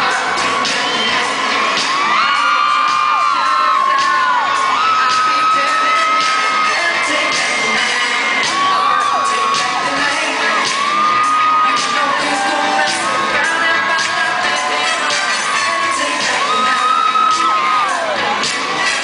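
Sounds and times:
high held cries: 0:00.0 - 0:18.3
crowd cheering and whooping: 0:00.0 - 0:19.0
live pop music: 0:00.0 - 0:19.0.

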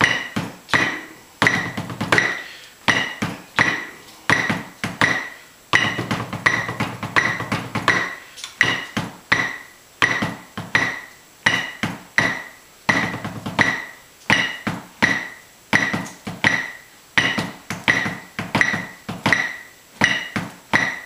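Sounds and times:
drum mallets on practice pad: 0:00.0 - 0:21.0
metronome beeping: 0:00.0 - 0:21.0.

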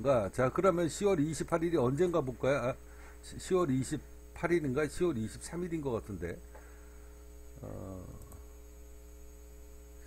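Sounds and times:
electrical mains hum: 0:00.0 - 0:10.0
faint clicks: 0:08.1 - 0:08.4.

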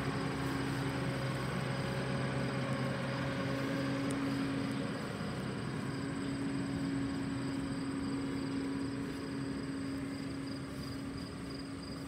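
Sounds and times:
low engine hum: 0:00.0 - 0:12.0.

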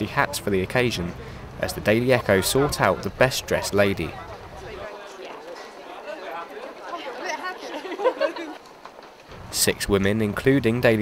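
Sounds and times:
people chatting: 0:00.0 - 0:08.6, 0:09.5 - 0:11.0.

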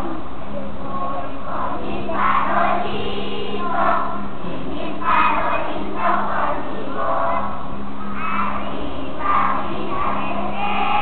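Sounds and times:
crowd murmur: 0:00.0 - 0:11.0
steady low hum: 0:00.0 - 0:11.0
children singing together: 0:00.8 - 0:11.0.

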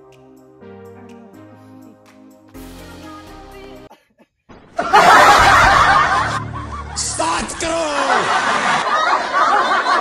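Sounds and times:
group laughing: 0:04.8 - 0:10.0.

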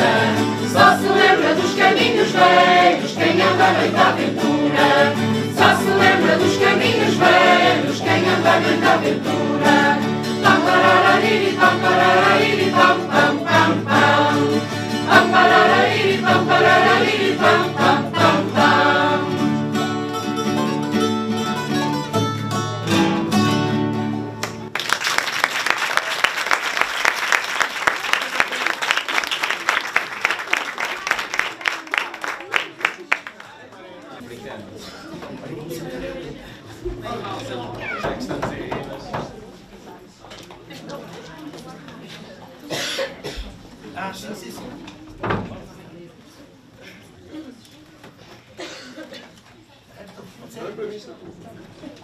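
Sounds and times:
choir singing folk song: 0:00.0 - 0:20.2
strummed acoustic guitars: 0:00.0 - 0:24.7
audience applauding: 0:24.4 - 0:33.7.

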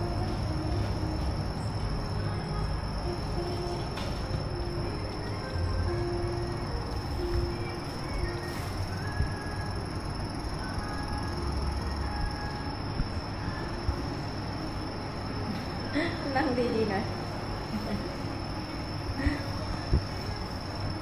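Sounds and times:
faint background music: 0:00.0 - 0:21.0
room and fan hum: 0:00.0 - 0:21.0
thin high whine: 0:00.0 - 0:21.0.

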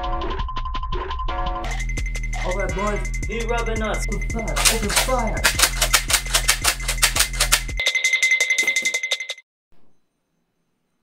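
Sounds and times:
background music with beat: 0:00.1 - 0:09.3
rapid ticking: 0:01.7 - 0:08.2
high ringing tone: 0:07.8 - 0:10.4.

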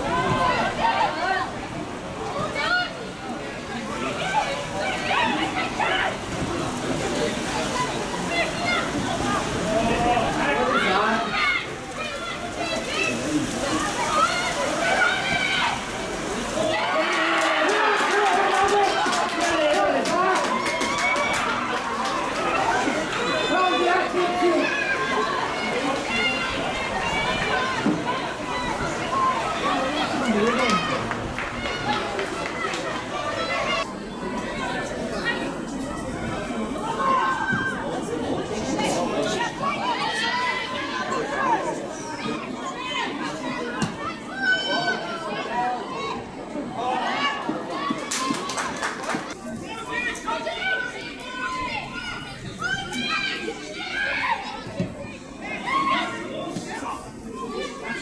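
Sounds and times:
general chatter: 0:00.0 - 0:58.0
voices shouting and calling: 0:00.0 - 0:58.0
excited shouting and cheering: 0:07.6 - 0:35.5, 0:38.7 - 0:58.0.

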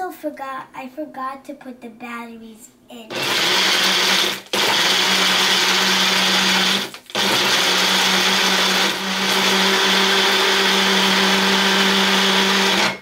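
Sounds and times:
blender whirring: 0:03.1 - 0:13.0.

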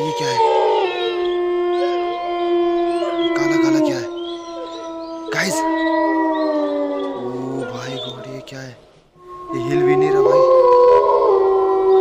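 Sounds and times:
dog howling: 0:00.0 - 0:12.0.

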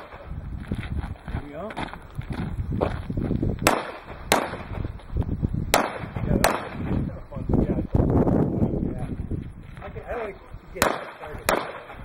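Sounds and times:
pistol shots: 0:03.6 - 0:04.8, 0:05.7 - 0:07.0, 0:10.8 - 0:12.0.

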